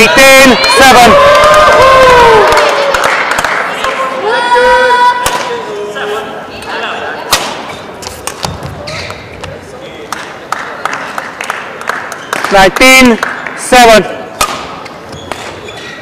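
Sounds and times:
shuttlecock struck by rackets: 7.3s - 8.6s, 14.4s - 15.6s.

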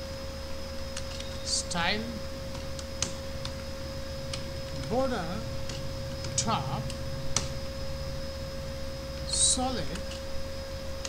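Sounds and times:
constant pure tone: 0.0s - 11.0s
steady background hum: 0.0s - 11.0s.

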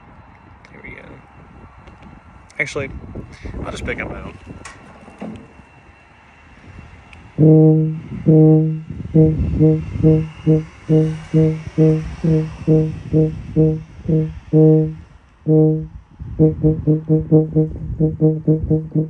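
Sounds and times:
tuba playing low notes: 7.4s - 19.0s.

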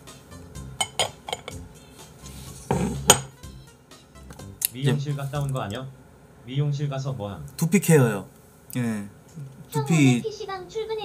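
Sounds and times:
soft background music: 0.0s - 6.0s
dishes clinking: 0.8s - 1.6s, 2.7s - 3.3s.

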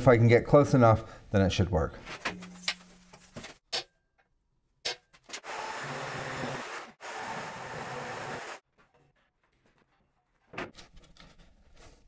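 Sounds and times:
power tool on sheet steel: 5.4s - 8.6s.

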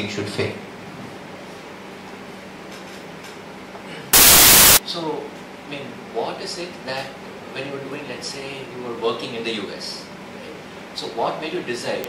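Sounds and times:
faint room hum: 0.0s - 12.0s
microphone static hiss: 4.2s - 4.8s.

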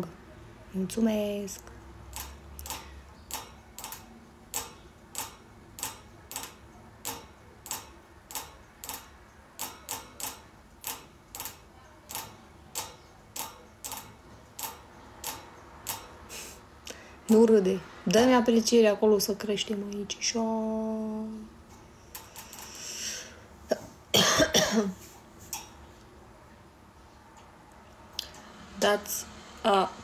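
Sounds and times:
light sharp clicking: 1.6s - 16.2s.

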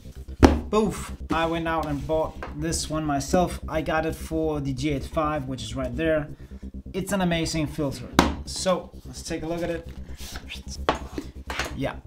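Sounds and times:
box knocking on table: 0.4s - 0.7s, 8.2s - 8.5s.

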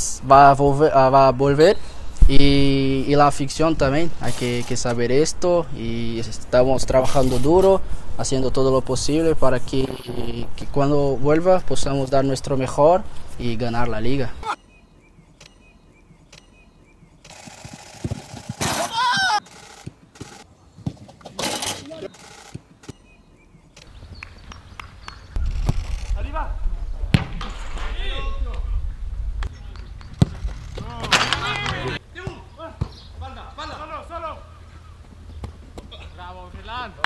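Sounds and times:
players shouting: 18.7s - 19.5s, 30.8s - 32.8s
footballs being kicked: 29.4s - 33.0s.

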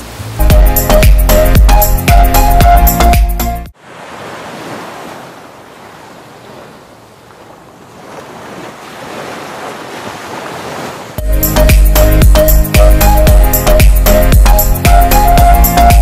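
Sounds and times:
music with a beat: 0.4s - 3.7s, 11.2s - 16.0s
small waves washing onto beach: 3.7s - 11.2s.

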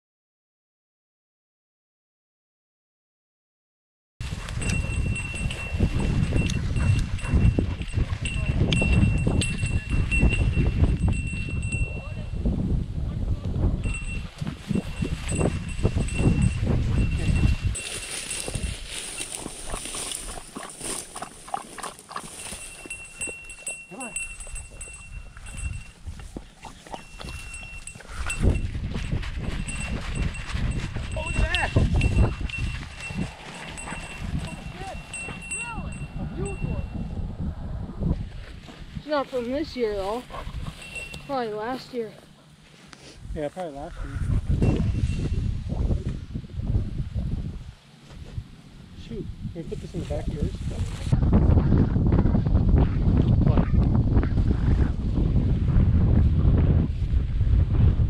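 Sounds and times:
dog collar bell ringing: 4.6s - 12.3s, 13.8s - 19.4s, 22.4s - 26.0s, 26.9s - 28.8s, 29.4s - 37.0s, 40.8s - 41.4s
dog pushing through dry grass: 16.9s - 35.5s.

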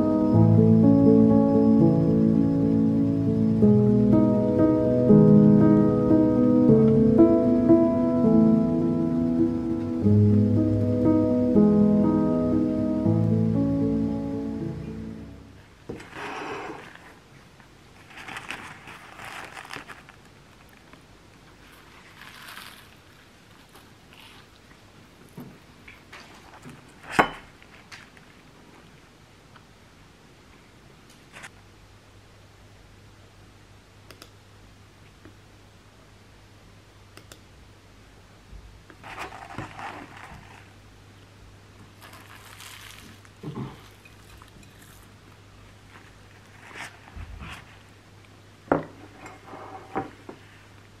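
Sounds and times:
background music: 0.0s - 15.6s
paper crinkling: 16.0s - 24.8s, 39.0s - 40.8s, 41.8s - 45.2s, 45.8s - 47.9s.

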